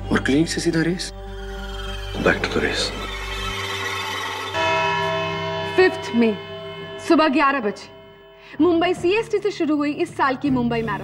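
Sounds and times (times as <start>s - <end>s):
dramatic bell-like music: 0.0s - 10.1s.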